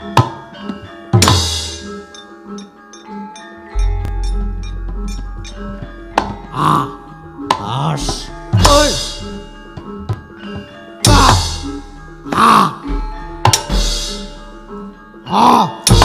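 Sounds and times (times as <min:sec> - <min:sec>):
metallophones ringing: 0:00.0 - 0:16.0.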